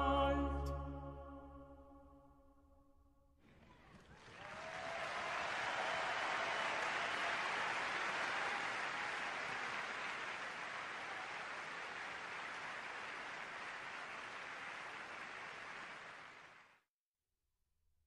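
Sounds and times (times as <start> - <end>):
audience applauding: 3.5 - 16.8.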